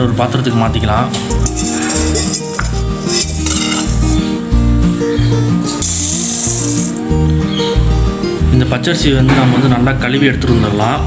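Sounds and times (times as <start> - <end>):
rice pouring into metal bowl: 5.7 - 7.0.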